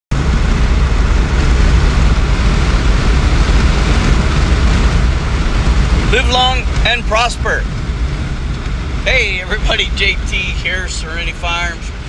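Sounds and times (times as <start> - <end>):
road and wind noise in vehicle: 0.1 - 12.0.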